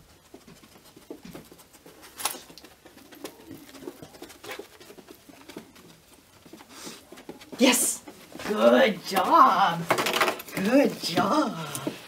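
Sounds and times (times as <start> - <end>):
dog sniffing: 0.0 - 7.2
paws pattering on carpet: 0.0 - 9.4.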